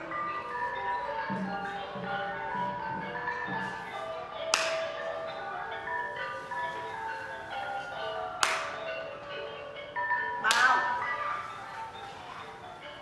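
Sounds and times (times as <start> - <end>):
traditional mallet percussion music: 0.0 - 13.0.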